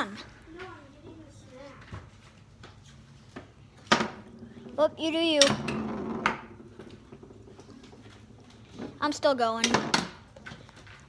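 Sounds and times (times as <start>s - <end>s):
foosball table clack: 3.8s - 4.4s, 5.4s - 7.6s, 9.6s - 10.2s.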